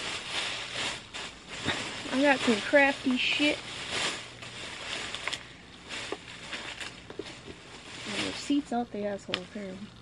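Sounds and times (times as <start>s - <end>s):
plastic bag rustling: 0.0s - 10.0s.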